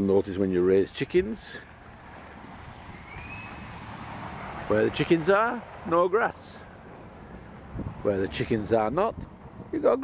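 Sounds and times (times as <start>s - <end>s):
thin rising whistle-like call: 2.9s - 3.8s.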